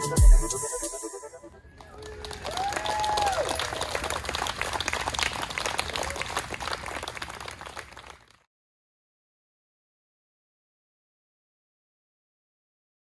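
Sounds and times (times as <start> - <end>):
people whooping: 1.5 - 8.1
crowd clapping: 1.6 - 8.5.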